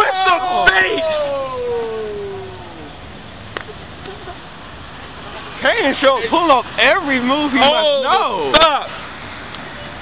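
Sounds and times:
person crying out ohhh: 0:00.0 - 0:02.9.

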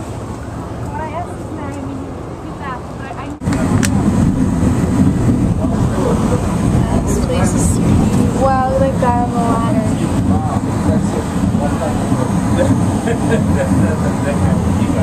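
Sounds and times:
vehicle rumble from on board: 0:00.0 - 0:15.0.

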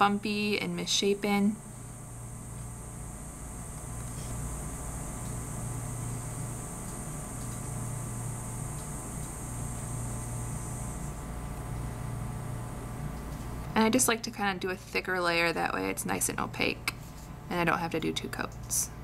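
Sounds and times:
low electrical hum: 0:00.0 - 0:19.0
thin high hiss: 0:01.6 - 0:12.1.

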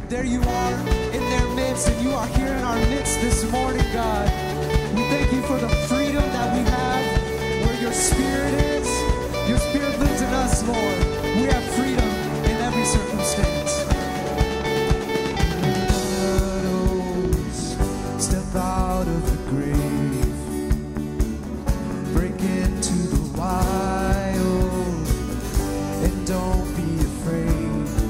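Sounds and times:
man singing: 0:00.0 - 0:21.1, 0:22.0 - 0:28.0
drum kit beat: 0:00.0 - 0:28.0
guitar: 0:00.0 - 0:28.0.

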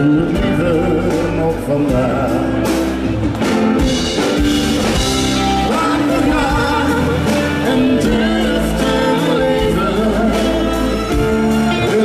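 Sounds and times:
man singing into microphone: 0:00.0 - 0:02.8, 0:05.5 - 0:12.0
drum kit: 0:00.0 - 0:12.0
electric guitar: 0:00.0 - 0:12.0
keyboards: 0:00.0 - 0:12.0.

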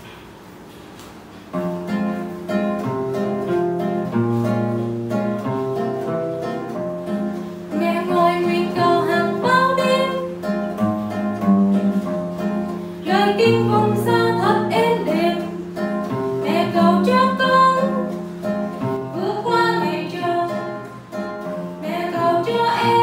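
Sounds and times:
acoustic guitar playing: 0:01.2 - 0:23.0
woman singing: 0:07.7 - 0:10.4, 0:13.0 - 0:15.6, 0:16.4 - 0:18.2, 0:19.1 - 0:21.0, 0:21.8 - 0:23.0.

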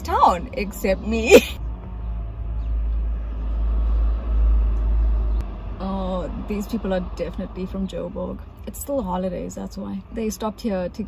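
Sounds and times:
low vehicle engine rumble: 0:00.0 - 0:11.0.

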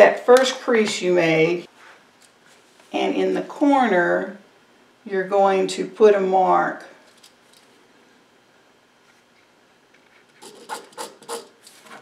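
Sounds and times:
pen scratching on fabric: 0:10.4 - 0:11.6.

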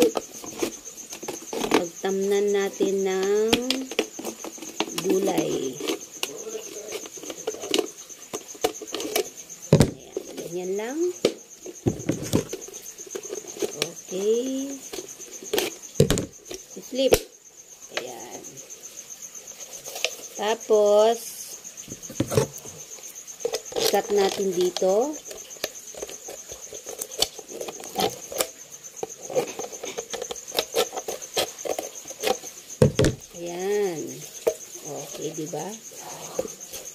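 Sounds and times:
plastic bottle knock: 0:09.7 - 0:10.0, 0:11.2 - 0:12.5, 0:16.0 - 0:16.3, 0:32.8 - 0:33.2.

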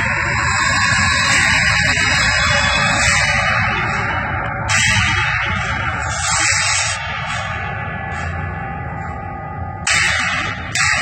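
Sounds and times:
distorted rock music: 0:00.0 - 0:11.0.

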